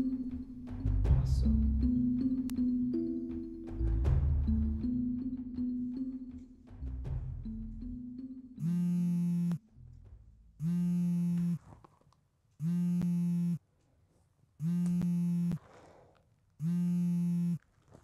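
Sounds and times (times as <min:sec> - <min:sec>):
phone alarm buzzing: 0:08.6 - 0:09.6, 0:10.6 - 0:11.6, 0:12.6 - 0:13.6, 0:14.6 - 0:15.6, 0:16.6 - 0:17.6.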